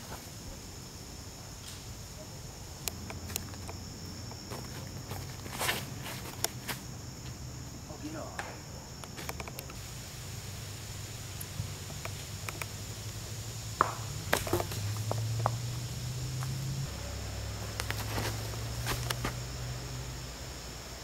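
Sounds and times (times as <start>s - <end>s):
high insect drone: 0.0s - 21.0s
footsteps: 4.3s - 7.4s, 17.6s - 19.4s.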